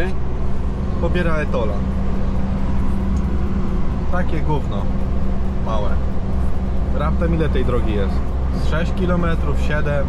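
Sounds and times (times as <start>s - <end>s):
diesel engine drone in cab: 0.0s - 10.0s.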